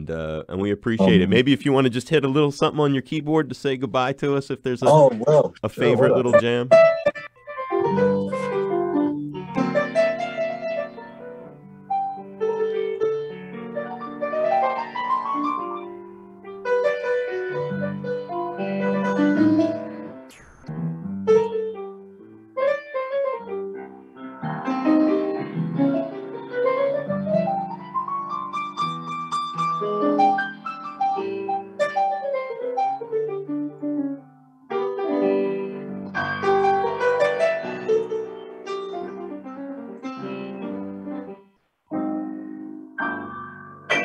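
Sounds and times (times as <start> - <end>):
solo piano improvising: 6.7 - 44.0.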